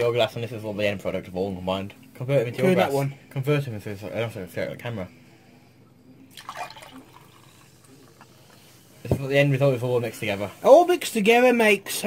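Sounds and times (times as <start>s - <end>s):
liquid splashing: 6.3s - 8.4s
fizzy drink sloshing in a glass: 6.3s - 8.5s.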